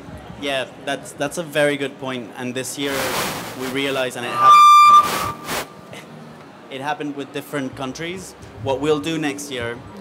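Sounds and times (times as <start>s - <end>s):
microphone feedback squeal: 4.2s - 5.7s.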